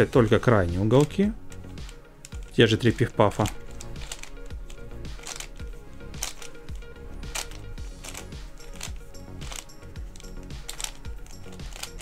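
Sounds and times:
music with steady beat: 0.0s - 12.0s
twisty puzzle clicking: 0.0s - 12.0s.

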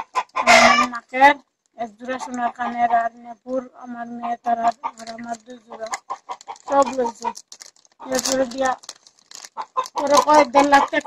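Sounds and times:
chickens clucking: 0.0s - 8.8s, 9.5s - 11.0s
woman talking: 0.5s - 6.0s, 6.7s - 7.4s, 8.0s - 8.8s, 10.0s - 11.0s.

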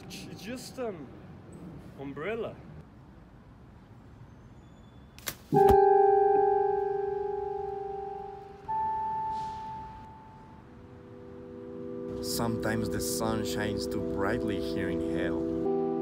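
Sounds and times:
keyboard note ringing: 5.5s - 16.0s
soft held keyboard chords: 5.6s - 16.0s.

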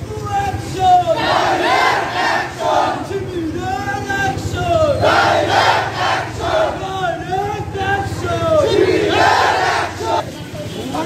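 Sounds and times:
crowd shouting a slogan: 0.4s - 10.2s.

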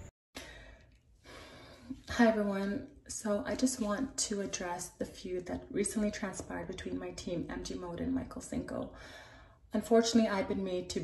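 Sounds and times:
woman breathing softly: 8.9s - 9.7s.

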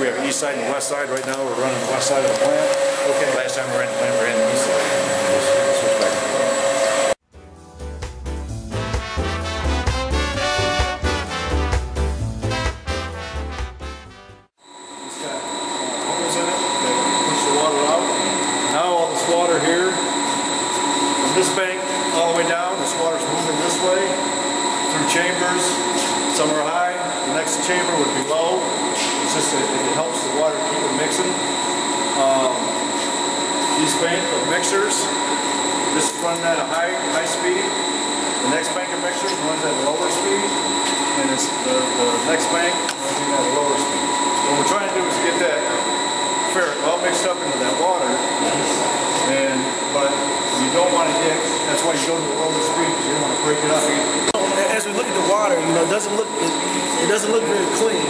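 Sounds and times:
high whine: 0.0s - 7.2s, 8.5s - 58.0s
machinery drone: 0.0s - 7.2s, 14.6s - 58.0s.

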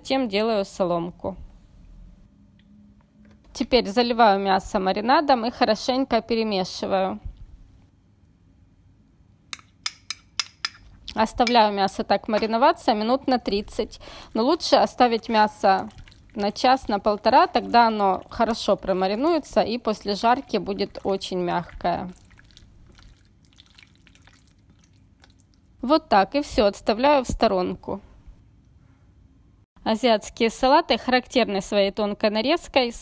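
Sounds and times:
metal spoon clinking glass cup: 9.6s - 11.6s
hand squishing meat in marinade: 14.5s - 25.8s.

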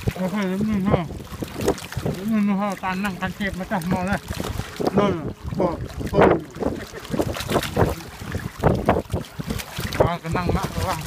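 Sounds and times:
small waves washing against rocks: 0.0s - 11.0s
wind buffeting microphone: 0.0s - 11.0s.

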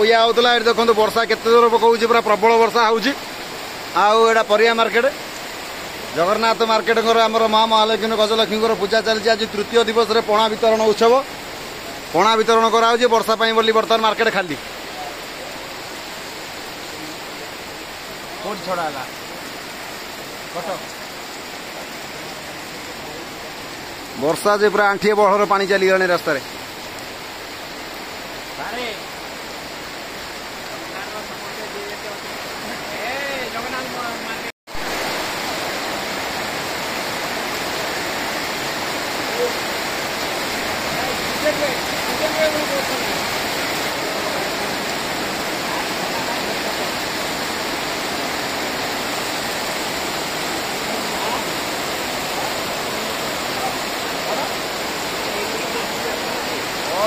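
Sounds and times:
rain falling: 0.0s - 57.0s.

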